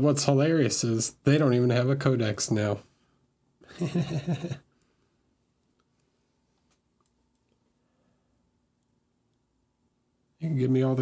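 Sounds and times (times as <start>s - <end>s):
man laughing: 3.7s - 4.6s.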